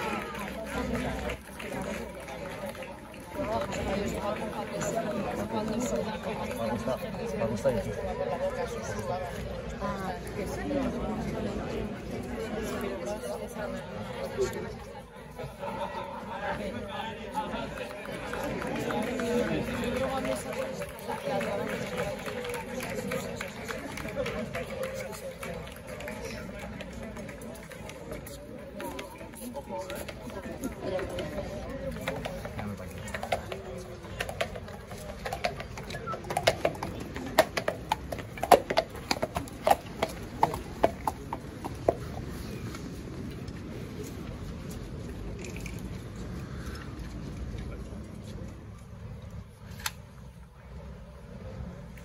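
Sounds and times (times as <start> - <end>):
crowd chatter: 0.0 - 52.0
horse hooves on asphalt: 31.9 - 42.8.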